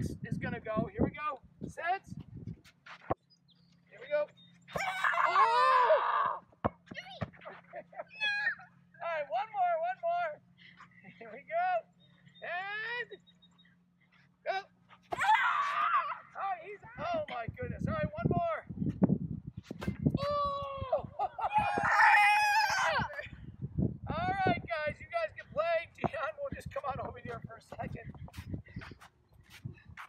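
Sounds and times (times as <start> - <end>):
children shouting and squealing: 4.7 - 6.6, 8.0 - 8.8, 15.1 - 16.4, 20.2 - 23.3.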